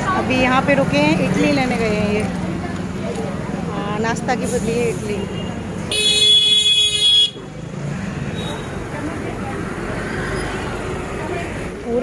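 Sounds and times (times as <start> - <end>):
street traffic noise: 0.0 - 12.0
vehicle horn honking: 5.4 - 7.4.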